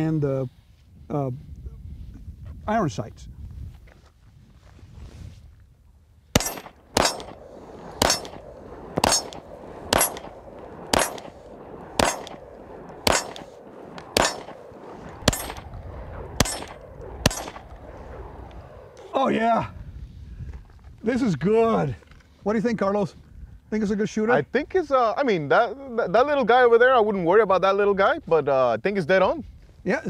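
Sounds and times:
steel target ringing: 6.4 - 7.4, 8.0 - 8.4, 9.0 - 11.3, 12.0 - 12.4, 13.0 - 14.6, 15.2 - 17.6
pistol shots: 6.4 - 18.4.

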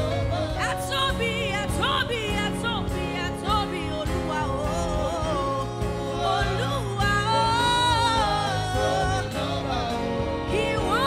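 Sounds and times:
woman singing: 0.0 - 9.7, 10.3 - 11.0
instrumental backing music: 0.0 - 11.0
man singing: 4.6 - 10.6.

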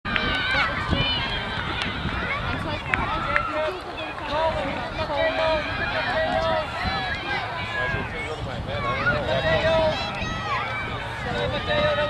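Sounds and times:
children and adults calling out: 0.1 - 12.0.

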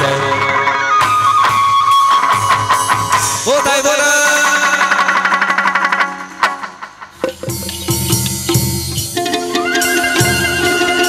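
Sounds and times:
plucked string instrument tremolo: 2.3 - 11.0.

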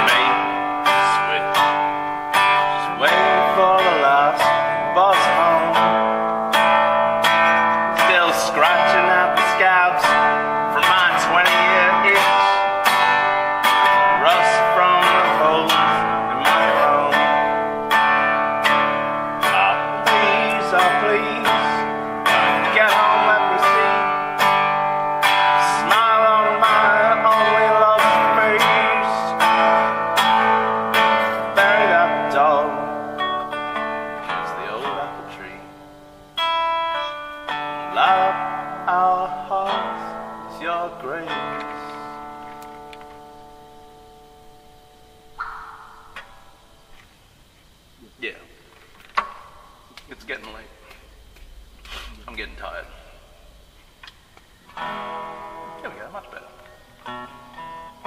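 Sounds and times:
man singing: 0.0 - 1.7, 2.6 - 6.1, 7.9 - 12.7, 14.0 - 17.7, 19.4 - 24.5, 25.4 - 29.8, 31.3 - 33.2, 34.3 - 35.7, 37.9 - 42.1
acoustic guitar strumming: 0.0 - 58.0.

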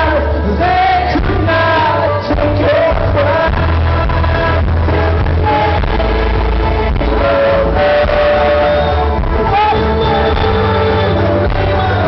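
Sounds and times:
heavy bass: 0.0 - 12.0.

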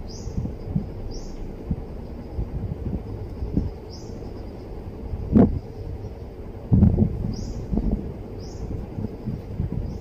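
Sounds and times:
low dull thumps: 0.0 - 3.9, 6.7 - 9.9
bird chirping: 0.0 - 10.0
steady low rumble: 0.0 - 10.0.

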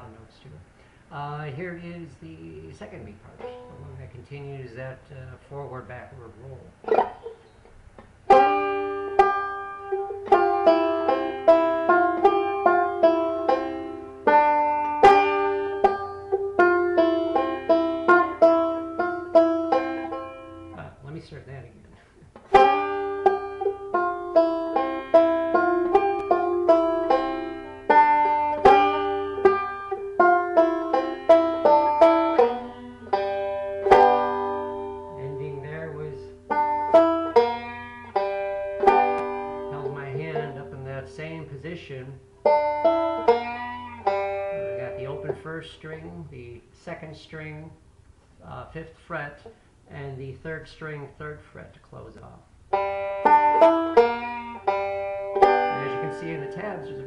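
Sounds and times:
banjo picking: 0.0 - 47.8, 52.2 - 57.0.

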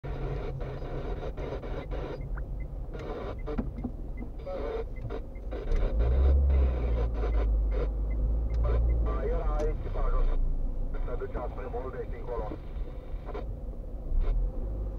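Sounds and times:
car engine and tyres rumbling: 0.0 - 14.9.

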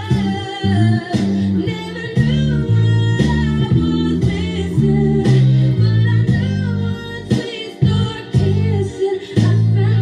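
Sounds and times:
electric bass guitar notes: 0.0 - 10.0
r and b song backing: 0.0 - 10.0
woman singing: 0.0 - 10.0.

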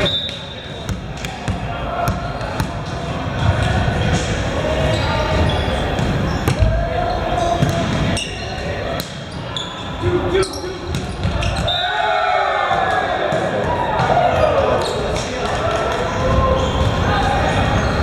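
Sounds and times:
players calling out: 0.0 - 18.0.

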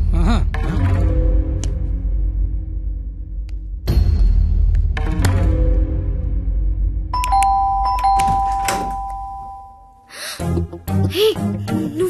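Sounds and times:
film music: 0.0 - 12.0
doorbell switch press: 7.2 - 9.7
two-tone doorbell chime: 7.2 - 10.1.

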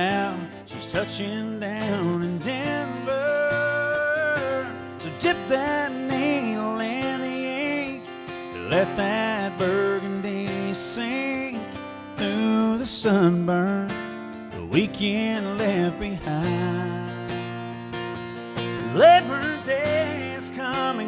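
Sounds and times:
country song on acoustic guitar: 0.0 - 21.0.

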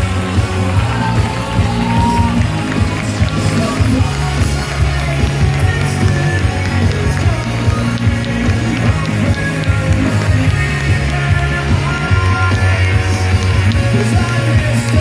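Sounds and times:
live pop rock band: 0.0 - 15.0.

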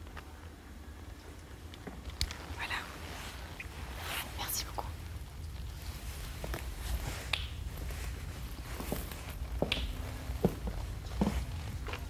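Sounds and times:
soft breathy whispering: 2.3 - 7.1.

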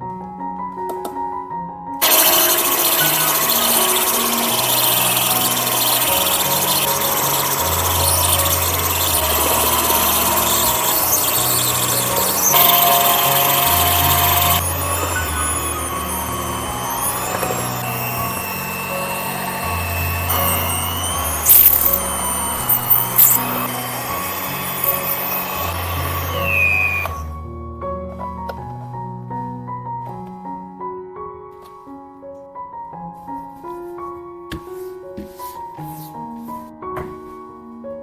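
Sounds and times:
electric mixer kneading dough: 2.0 - 27.3.

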